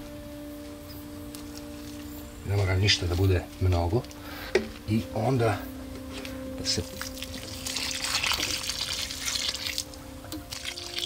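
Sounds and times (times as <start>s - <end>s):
water pouring onto soil: 6.7s - 11.0s.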